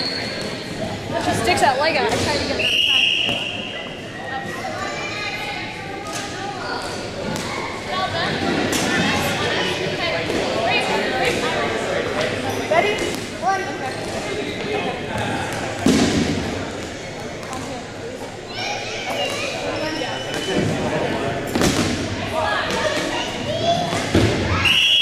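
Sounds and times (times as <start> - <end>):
indistinct chatter and calls: 16.9 - 21.5.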